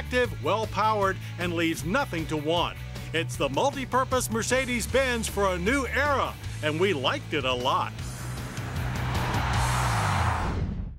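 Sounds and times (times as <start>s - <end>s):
background music: 0.0s - 10.9s
car tyre and road noise: 8.0s - 10.8s.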